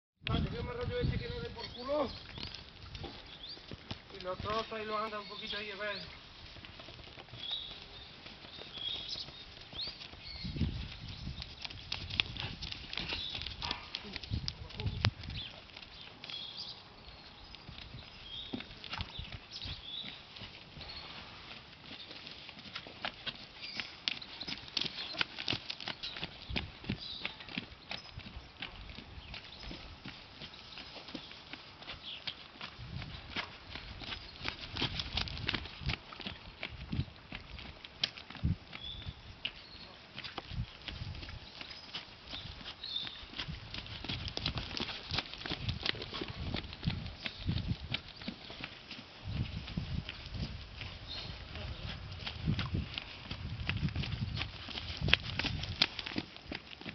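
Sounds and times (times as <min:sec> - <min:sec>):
horse trotting on sand: 0:00.2 - 0:56.9.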